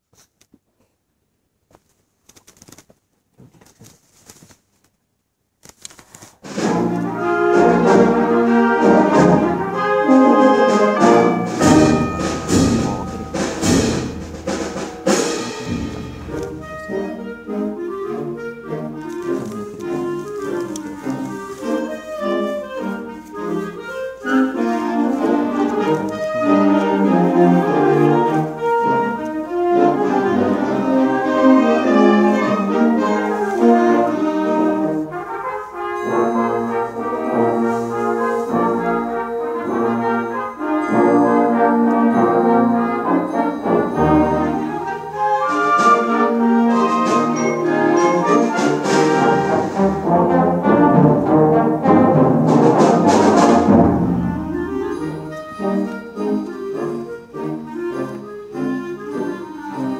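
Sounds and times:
brass: 0:06.4 - 0:59.9
concert band playing: 0:06.5 - 0:59.9
percussion crashes: 0:10.9 - 0:17.0, 0:52.1 - 0:55.3.

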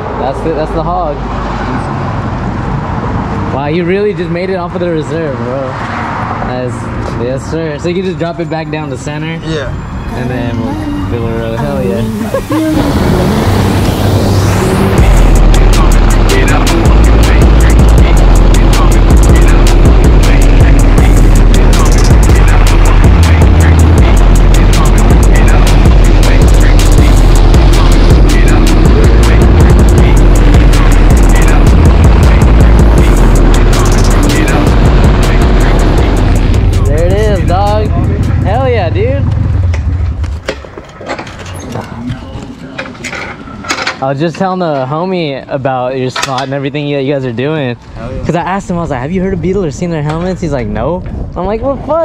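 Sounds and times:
motorcycle engines running: 0:09.6 - 0:42.5
wind buffeting microphone: 0:49.1 - 0:52.0.

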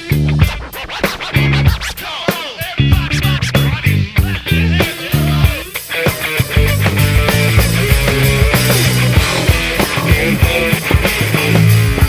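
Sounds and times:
funk band music: 0:00.0 - 0:12.0
turntable scratching: 0:00.0 - 0:12.0.

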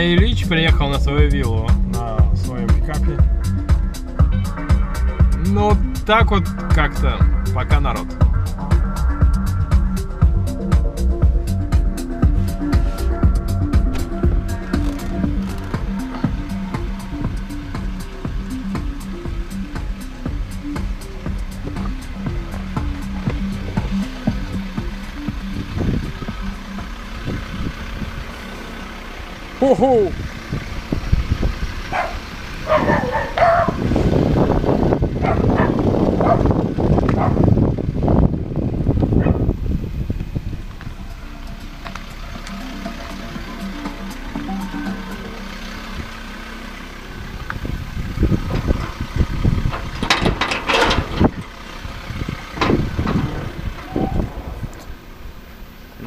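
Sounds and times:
pickup engine idling: 0:00.0 - 0:56.0.

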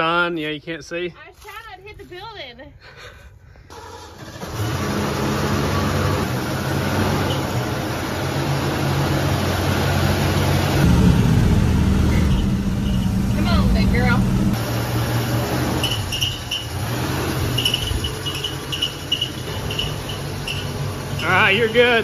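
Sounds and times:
truck engine running low drone: 0:04.2 - 0:22.0.

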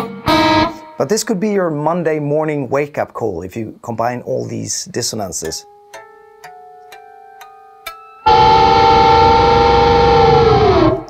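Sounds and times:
electric guitar picked notes: 0:00.0 - 0:01.0, 0:08.2 - 0:11.0.

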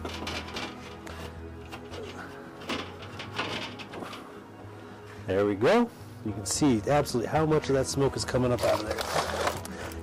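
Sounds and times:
metal grill grate clinking: 0:00.0 - 0:04.3
background music: 0:00.0 - 0:10.0.

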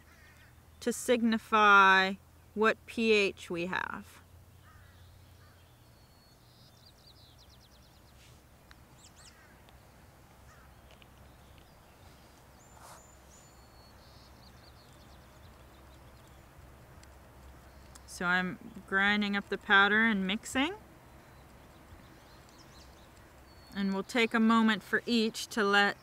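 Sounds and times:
small bird calls: 0:04.2 - 0:26.0.

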